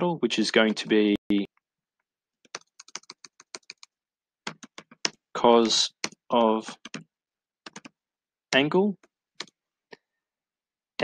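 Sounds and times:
typing on computer keyboard: 2.4 - 8.0.

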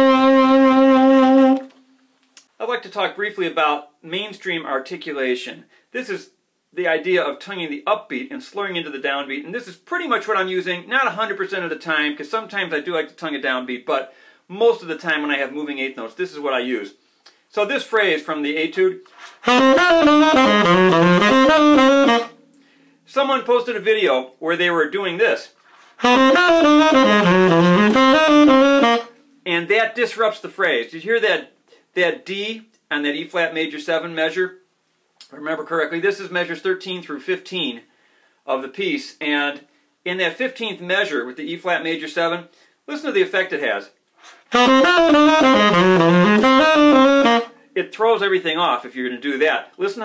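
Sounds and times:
tenor saxophone playing jazz: 0.0 - 1.8, 19.1 - 22.4, 25.8 - 29.2, 44.3 - 47.6.

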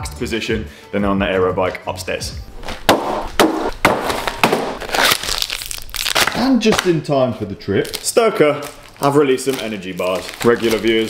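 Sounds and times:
crinkling packaging: 3.7 - 11.0.

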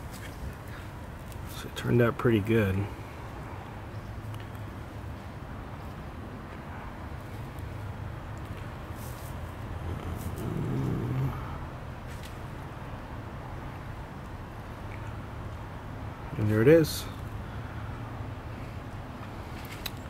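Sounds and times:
low outdoor rumble: 0.0 - 20.0.

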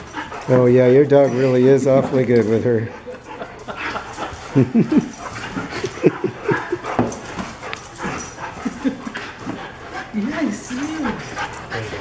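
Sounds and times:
dogs whimpering and yipping: 0.0 - 12.0.

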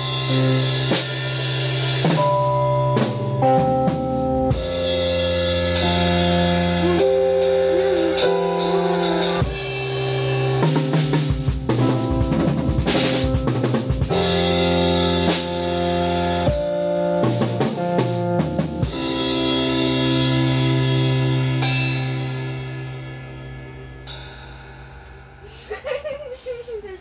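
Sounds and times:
drum fills: 0.0 - 22.6
electronic keyboard chords: 0.0 - 25.5
cymbal crashes: 4.6 - 11.6, 18.9 - 26.1.

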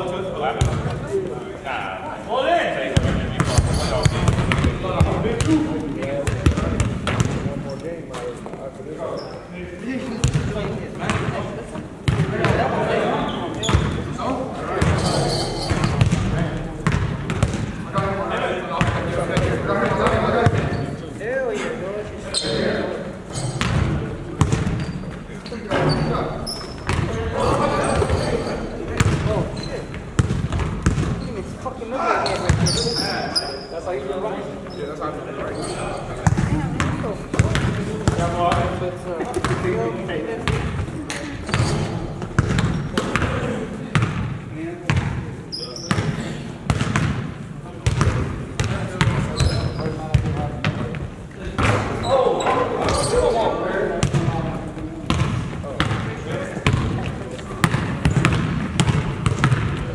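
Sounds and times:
basketball bouncing on hardwood: 57.6 - 59.8.

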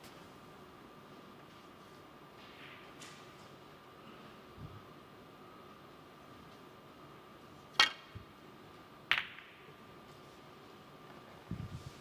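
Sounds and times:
snooker balls clicking and rattling: 9.0 - 9.8.

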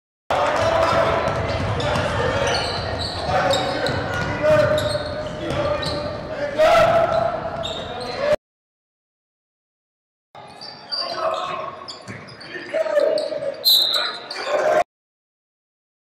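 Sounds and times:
players calling out: 0.3 - 8.4
sneakers squeaking: 0.4 - 8.4, 10.4 - 14.7.

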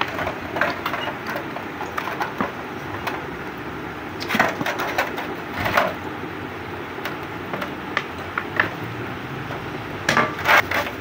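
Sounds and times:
hand tool scraping metal: 10.2 - 11.0.

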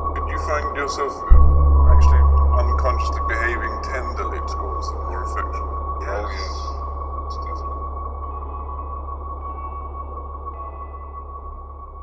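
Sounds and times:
ambient electronic drone: 0.0 - 12.0.

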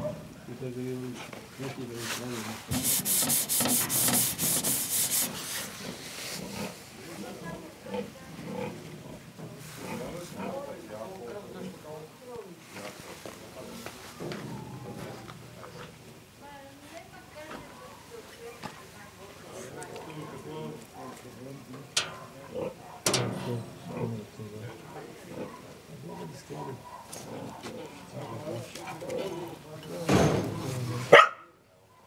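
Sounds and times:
loud hissing spray: 2.6 - 6.2
pigs grunting: 5.7 - 6.9, 7.5 - 10.7, 22.3 - 22.9, 23.6 - 29.6.

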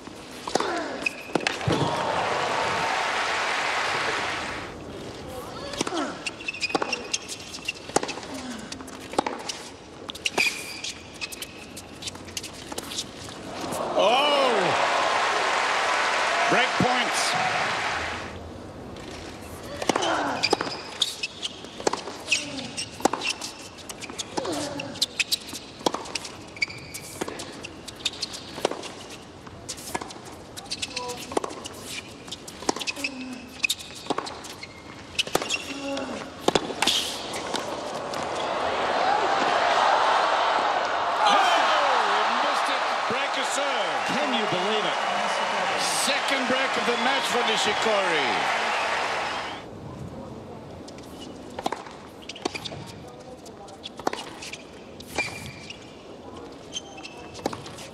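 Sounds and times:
sneaker squeaks: 0.4 - 1.9, 5.7 - 13.7, 19.4 - 38.5, 50.9 - 57.9
crowd applauding and cheering: 1.8 - 4.7, 13.6 - 18.4, 38.1 - 49.6.

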